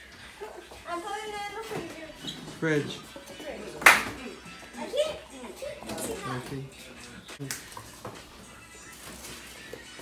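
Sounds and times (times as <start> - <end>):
background music: 0.0 - 10.0
child talking: 4.7 - 6.6.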